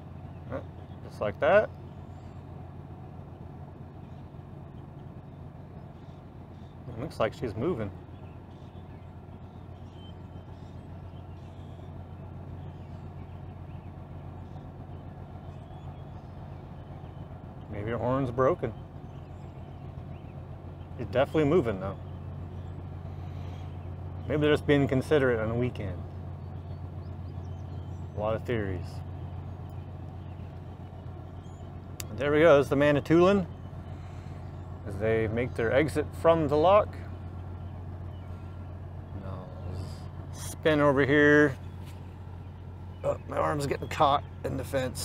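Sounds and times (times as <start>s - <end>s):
ship engines droning: 0.0s - 45.0s.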